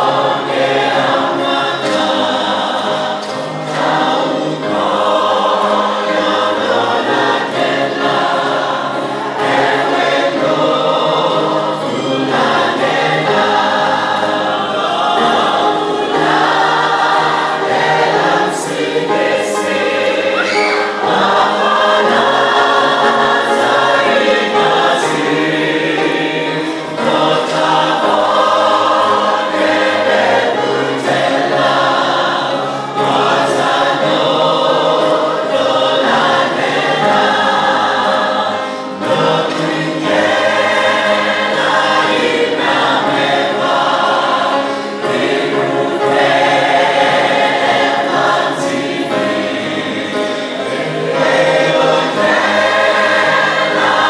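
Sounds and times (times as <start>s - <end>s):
group singing a hymn: 0.0s - 54.0s.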